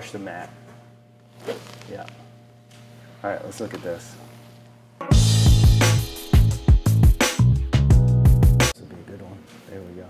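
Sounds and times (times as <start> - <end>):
golf club brushing hitting mat: 1.3 - 1.8.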